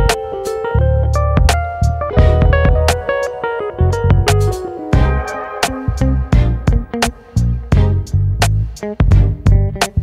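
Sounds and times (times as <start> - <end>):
guitar music with bass and beat: 0.0 - 10.0.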